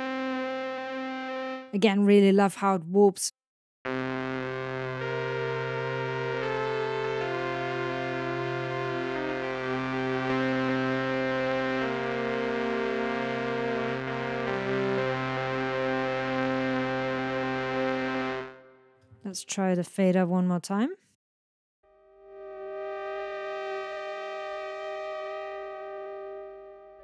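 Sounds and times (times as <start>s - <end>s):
buzzy keyboard chords: 0.0s - 2.0s, 3.9s - 19.0s, 21.9s - 27.0s.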